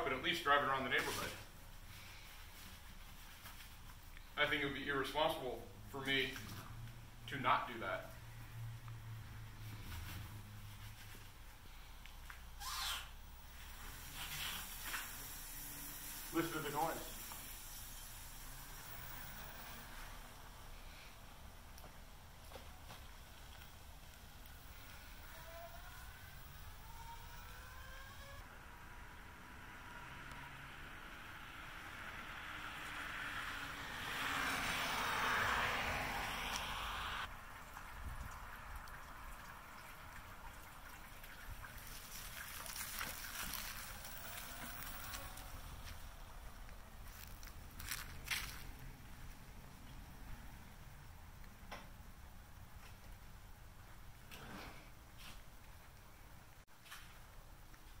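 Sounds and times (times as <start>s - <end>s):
motorcycle passing by: 24.5s - 37.3s, 42.6s - 50.7s
electric motor whine: 24.7s - 28.4s.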